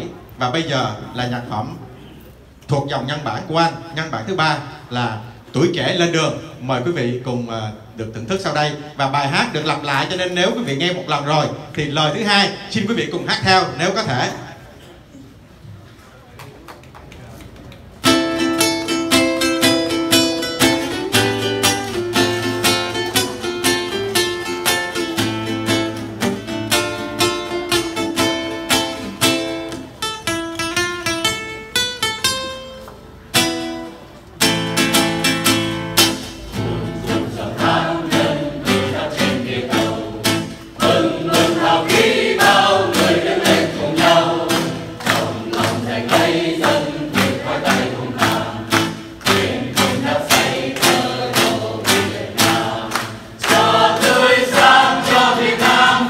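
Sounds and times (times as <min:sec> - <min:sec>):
strummed acoustic guitar: 0:18.0 - 0:56.0
mixed choir singing: 0:36.6 - 0:56.0.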